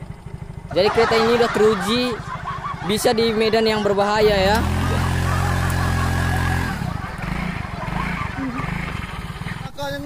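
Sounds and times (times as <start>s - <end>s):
scooter engine revving: 0.0s - 10.0s.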